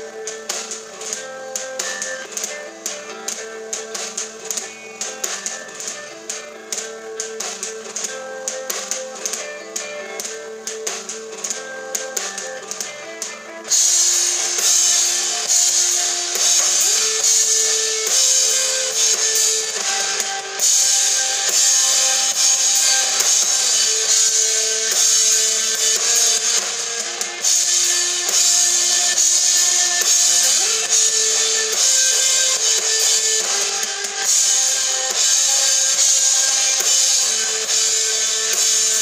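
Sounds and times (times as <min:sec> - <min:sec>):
crashing cymbals: 0:00.0 - 0:39.0
live rock band playing: 0:00.2 - 0:39.0.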